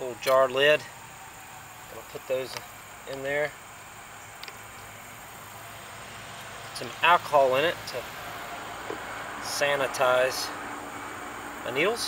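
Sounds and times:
low outdoor hiss: 0.0 - 12.0.

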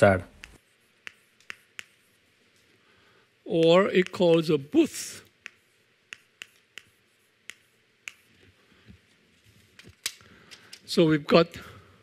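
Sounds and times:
chalk tapping on chalkboard: 0.4 - 2.2, 3.6 - 4.5, 5.4 - 8.5.

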